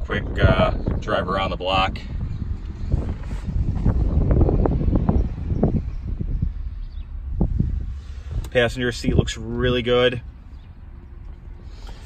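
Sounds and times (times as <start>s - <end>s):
low rumble: 0.0s - 11.8s.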